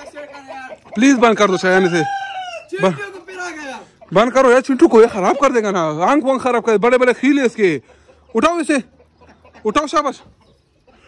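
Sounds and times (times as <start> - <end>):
rooster crowing: 0.0 - 3.0.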